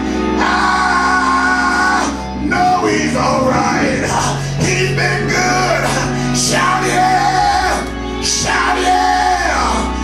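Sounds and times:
instrumental accompaniment with bass: 0:00.0 - 0:10.0
man singing gospel: 0:00.3 - 0:10.0.

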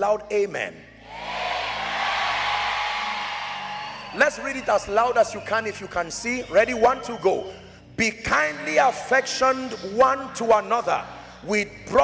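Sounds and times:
congregation shouting together: 0:01.0 - 0:04.4.

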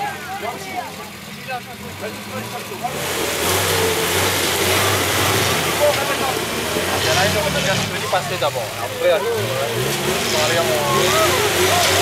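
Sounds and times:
off-road vehicle engine revving: 0:00.0 - 0:12.0.

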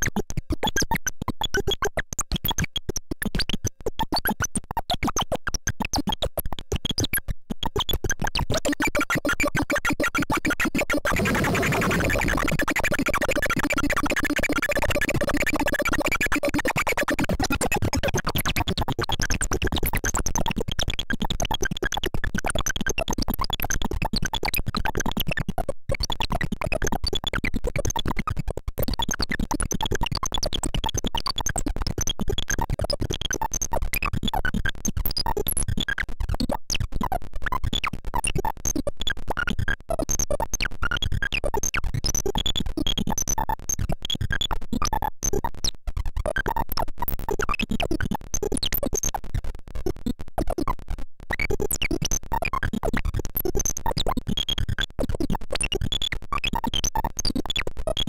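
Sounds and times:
glitchy electronic synth buzz: 0:10.8 - 0:17.4.

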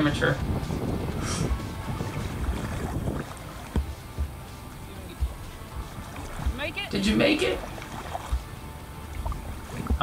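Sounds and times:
water rushing past kayak: 0:00.0 - 0:10.0
wind buffeting microphone: 0:00.0 - 0:10.0.

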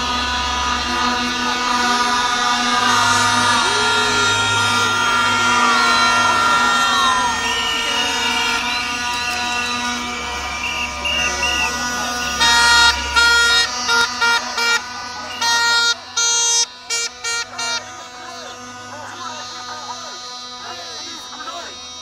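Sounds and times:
horn blasts: 0:00.0 - 0:22.0
marching protest crowd: 0:00.0 - 0:22.0.

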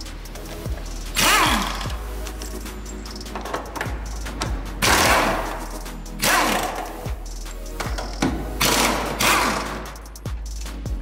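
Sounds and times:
background music with steady beat: 0:00.0 - 0:11.0
power wrench running: 0:01.1 - 0:03.8, 0:07.9 - 0:09.9.

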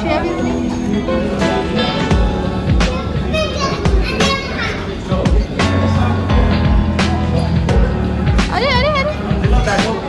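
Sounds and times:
background music: 0:00.0 - 0:10.0
children talking and calling out: 0:00.0 - 0:10.0.

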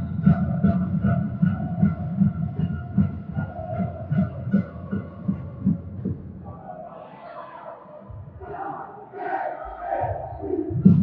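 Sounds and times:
echoing drumbeat: 0:00.0 - 0:06.7, 0:09.6 - 0:11.0.

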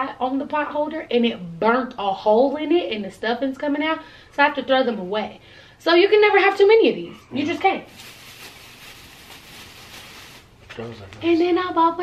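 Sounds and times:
plastic bag rustling: 0:07.4 - 0:10.6.

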